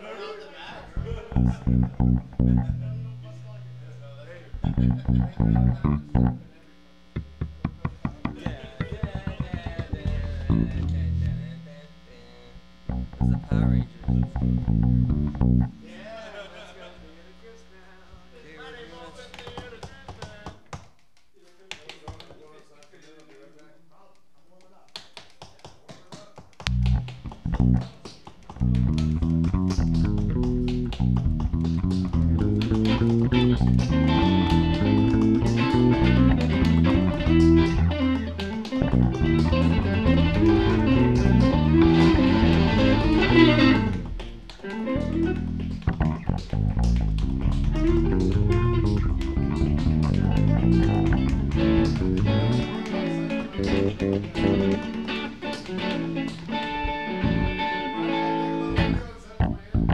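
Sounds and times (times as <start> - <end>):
live rock band playing: 29.0 - 59.0.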